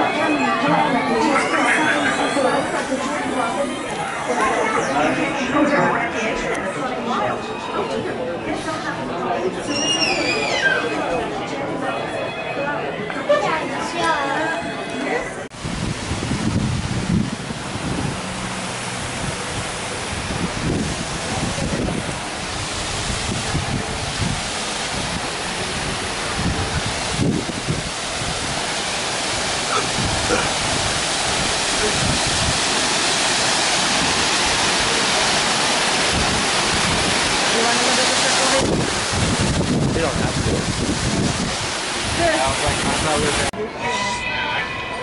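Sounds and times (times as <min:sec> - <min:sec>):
waterfall rushing: 0:00.0 - 0:12.5, 0:13.4 - 0:44.2
faint voices of passers-by: 0:00.0 - 0:15.6, 0:18.7 - 0:32.3, 0:42.0 - 0:45.0.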